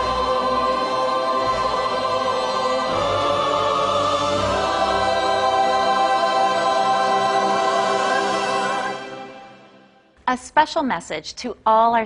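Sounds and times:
choir singing held chord: 0.0 - 10.1
musical backing: 0.0 - 10.4.

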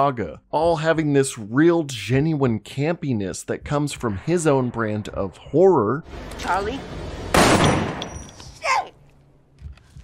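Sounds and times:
gunshot: 7.3 - 8.1.

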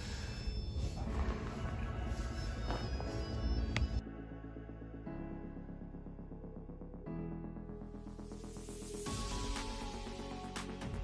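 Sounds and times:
quiet music of held tones: 0.0 - 11.0.

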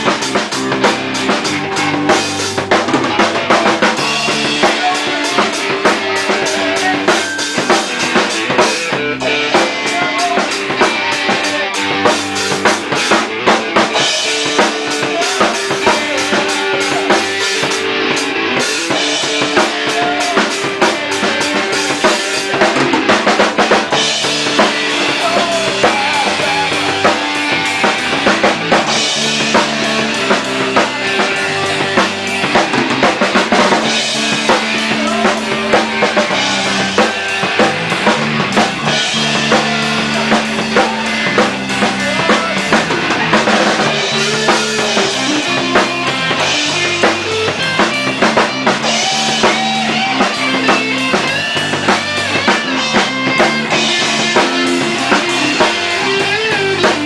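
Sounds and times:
band playing loud live music: 0.0 - 57.0
drum kit: 0.0 - 57.0
electric bass: 0.0 - 57.0.

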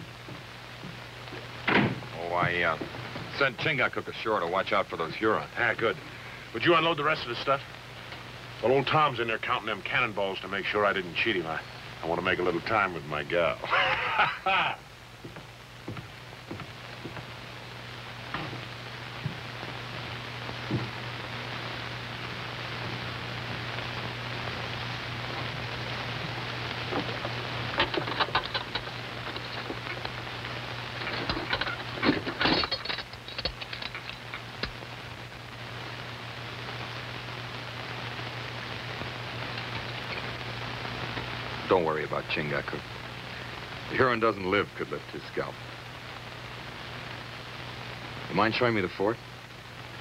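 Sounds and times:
steady hiss: 0.0 - 50.0.

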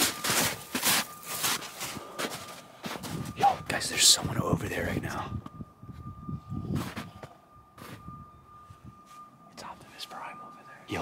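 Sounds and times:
faint steady high tone: 0.0 - 11.0
person whispering: 9.6 - 11.0.

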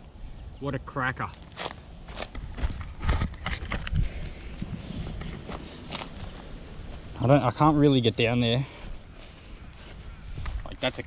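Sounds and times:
footsteps on gravel and dry grass: 1.2 - 11.0.

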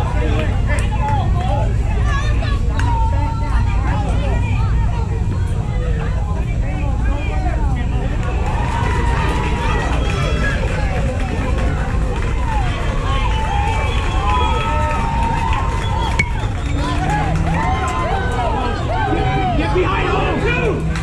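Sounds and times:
people calling out and chattering: 0.0 - 21.0.

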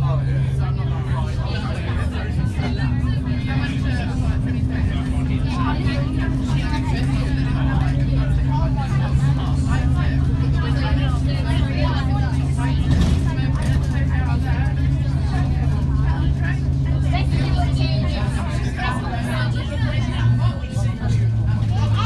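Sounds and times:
bus engine running: 0.0 - 22.0
passengers chattering: 0.0 - 22.0.

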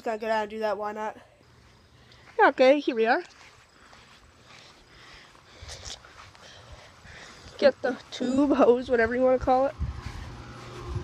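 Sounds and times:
footsteps on grass: 1.4 - 11.0.

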